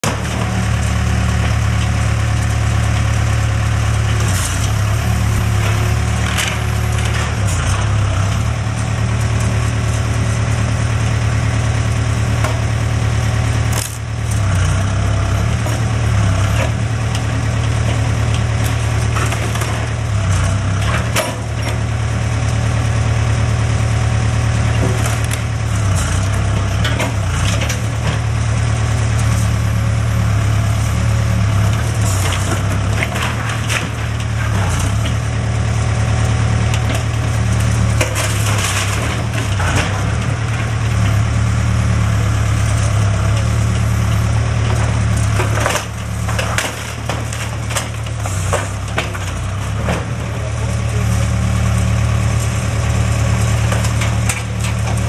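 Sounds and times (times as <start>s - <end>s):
diesel engine running: 0.0s - 55.0s
timber cracking and splintering: 13.6s - 14.8s, 35.8s - 41.2s, 43.0s - 50.3s.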